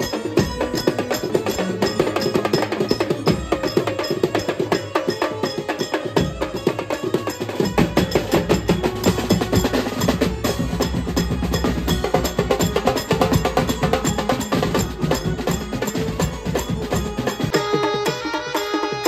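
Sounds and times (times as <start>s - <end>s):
fast dense drumming: 0.0s - 18.5s
drums beaten with sticks: 0.0s - 19.0s.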